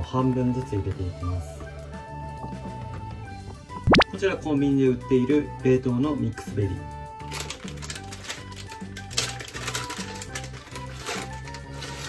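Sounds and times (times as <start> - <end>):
background music: 0.0 - 12.0
frozen berries clattering into glass jars: 7.3 - 12.0.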